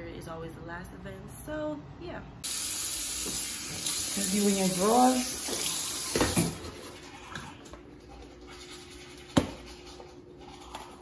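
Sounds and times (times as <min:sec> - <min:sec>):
toothbrush scrubbing teeth: 0:06.7 - 0:11.0.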